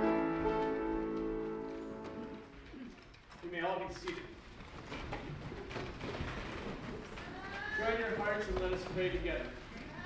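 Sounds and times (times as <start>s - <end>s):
shuffle and rustle of people: 0.0s - 10.0s.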